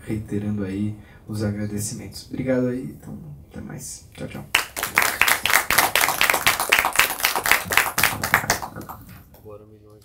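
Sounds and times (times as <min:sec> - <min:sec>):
audience applauding: 0:04.5 - 0:09.2.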